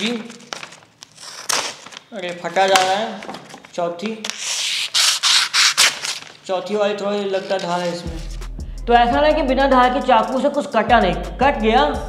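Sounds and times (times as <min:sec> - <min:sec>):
knife tearing paper: 0:00.5 - 0:02.0, 0:04.3 - 0:06.4, 0:07.3 - 0:08.5.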